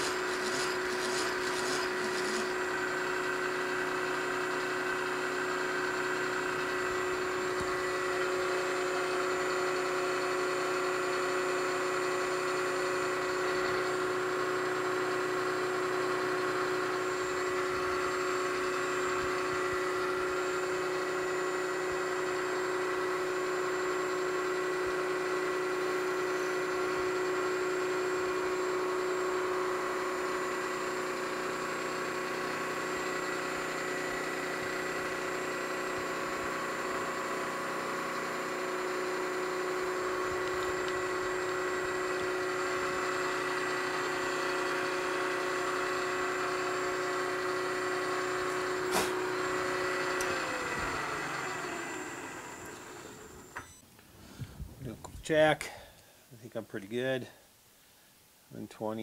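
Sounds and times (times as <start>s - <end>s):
milling machine cutting metal: 0.0s - 53.8s
motor whine: 0.0s - 55.0s.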